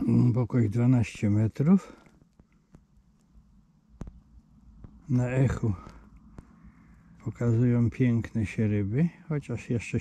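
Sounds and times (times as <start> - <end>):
low steady hum: 0.0 - 10.0
faint ticks: 1.8 - 5.0.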